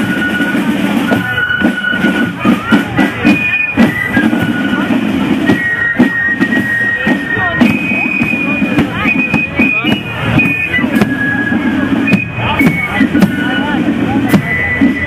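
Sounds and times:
bass drum and drums: 0:00.0 - 0:15.0
crowd voices: 0:00.0 - 0:15.0.

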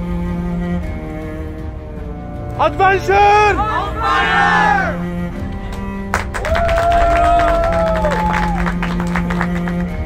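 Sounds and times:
background music with low note: 0:00.0 - 0:10.0
long drawn-out shout: 0:03.2 - 0:05.1, 0:06.4 - 0:08.8
group clapping and cheering: 0:03.6 - 0:10.0.

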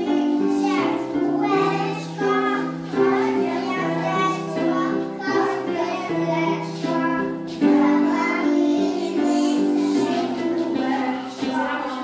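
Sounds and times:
children singing: 0:00.0 - 0:12.0
instrumental accompaniment: 0:00.0 - 0:12.0.

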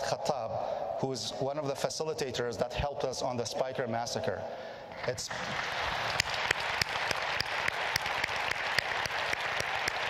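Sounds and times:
audience applauding: 0:05.1 - 0:10.0
close sharp hand claps: 0:05.3 - 0:10.0.

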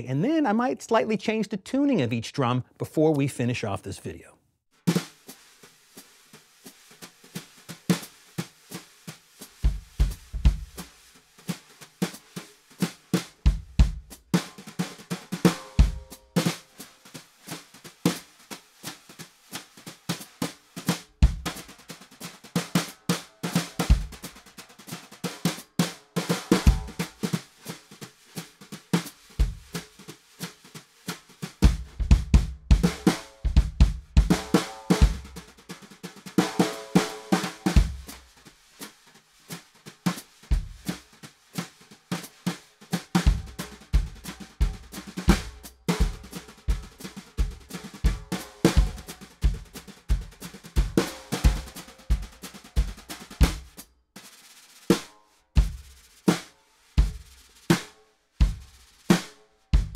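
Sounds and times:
snare drums played with brushes: 0:04.7 - 0:59.9
bass drum kicks: 0:13.5 - 0:14.1, 0:31.7 - 0:35.3.

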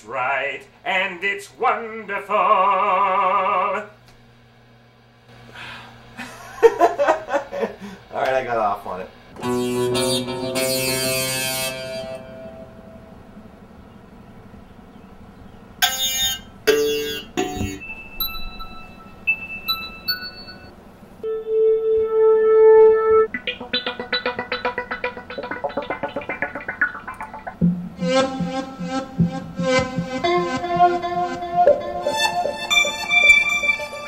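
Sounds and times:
synthesizer notes: 0:09.4 - 0:13.2, 0:21.2 - 0:34.0.

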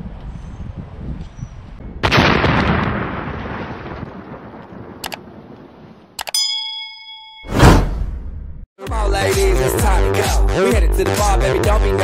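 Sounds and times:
sharp click: 0:06.2 - 0:06.4
metallic ding: 0:06.2 - 0:08.1.

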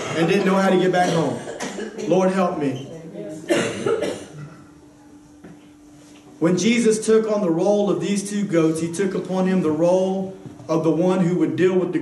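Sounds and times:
man coughing: 0:00.8 - 0:02.3, 0:03.5 - 0:04.8.

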